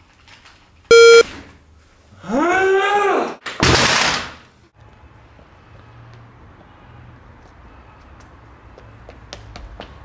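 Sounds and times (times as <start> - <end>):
short electronic beep: 0.9 - 1.2.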